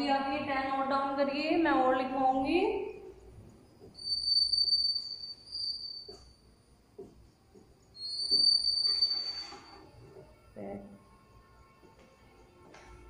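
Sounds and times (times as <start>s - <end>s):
high insect trill: 3.7s - 6.6s, 7.3s - 10.4s.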